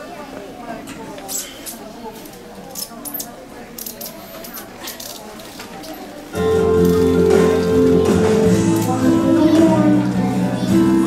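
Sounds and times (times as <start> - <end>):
murmur of audience voices: 0.0 - 11.0.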